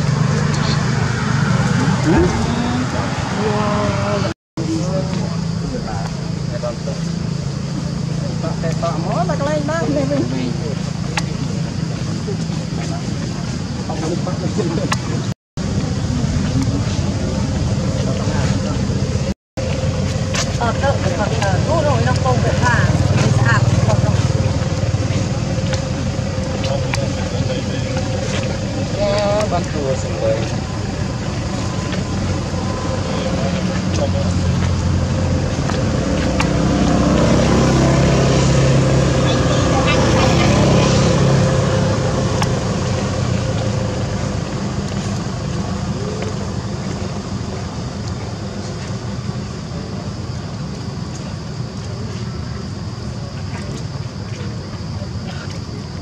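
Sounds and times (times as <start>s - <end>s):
people talking: 0.0s - 19.3s, 20.4s - 34.8s, 37.1s - 43.9s, 51.1s - 56.0s
steady low rumbling: 0.0s - 56.0s.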